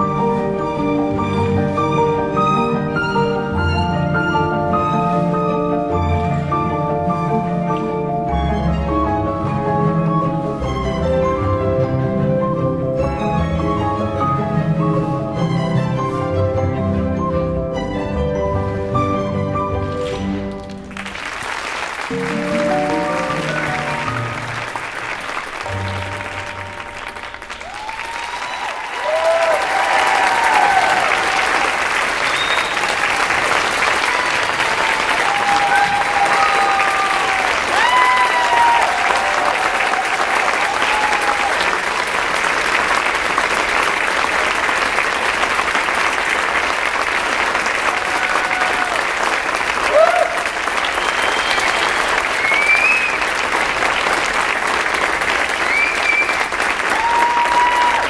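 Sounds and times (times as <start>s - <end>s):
audience applauding: 19.9s - 58.0s
shouts and whoops: 27.6s - 31.6s, 35.0s - 41.6s, 47.9s - 49.0s, 49.9s - 50.5s, 56.9s - 58.0s.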